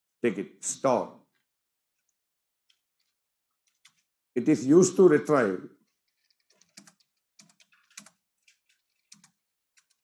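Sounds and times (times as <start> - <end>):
faint keyboard typing: 2.0 - 4.1, 5.8 - 10.0.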